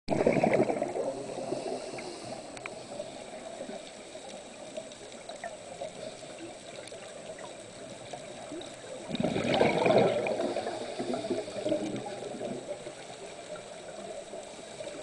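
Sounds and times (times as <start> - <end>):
muffled underwater rushing: 0.1 - 15.0
faint clicks: 1.6 - 15.0.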